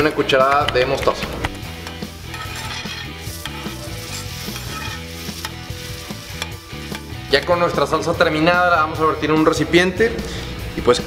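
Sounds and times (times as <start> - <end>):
sauce bubbling and sizzling: 2.0 - 7.3
ladle clicking against pan: 4.4 - 5.7, 6.3 - 7.5.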